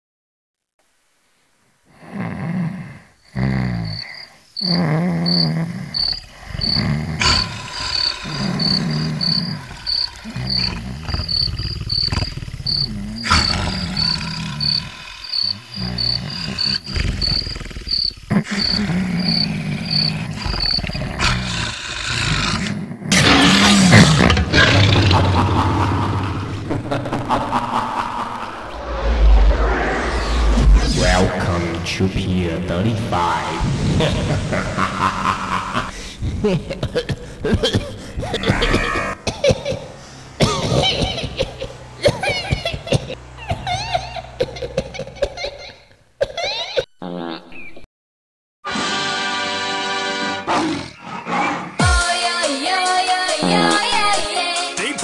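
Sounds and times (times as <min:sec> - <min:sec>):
crickets chirping: 0:03.2 - 0:21.6
low loud sounds: 0:24.4 - 0:36.2
loud crash and rumble: 0:28.6 - 0:31.9.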